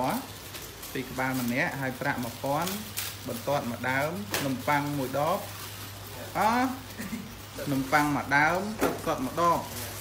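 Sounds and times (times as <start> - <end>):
faint crackling hiss: 0.0 - 10.0.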